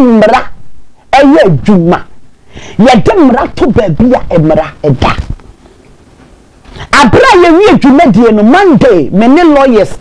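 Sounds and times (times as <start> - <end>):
woman talking: 0.0 - 2.1, 2.8 - 5.3, 6.9 - 10.0
low background hiss: 0.0 - 10.0.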